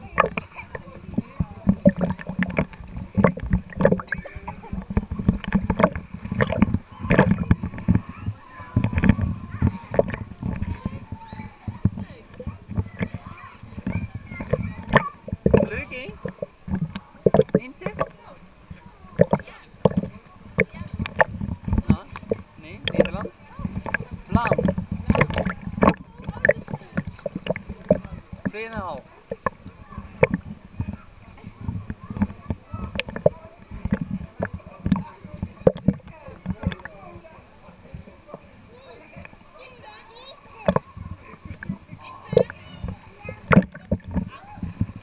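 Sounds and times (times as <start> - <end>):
people's voices: 0.0 - 45.0
pool water sloshing: 0.0 - 45.0.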